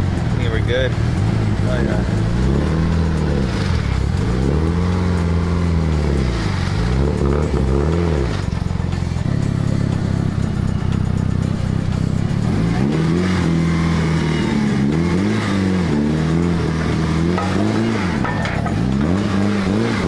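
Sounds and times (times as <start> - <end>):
car engine throttle blips: 0.0 - 20.0.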